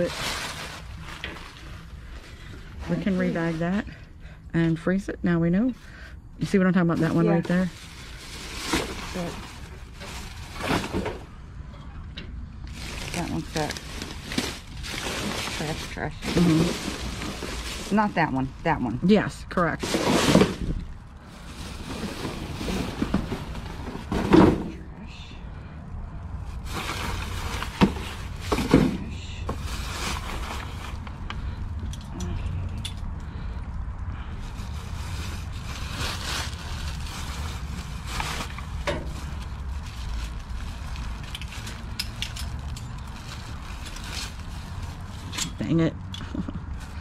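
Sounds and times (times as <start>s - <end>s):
plastic bags rustling and crinkling: 0.0s - 4.0s, 6.4s - 11.4s, 12.6s - 24.8s, 26.3s - 31.7s, 34.2s - 47.0s.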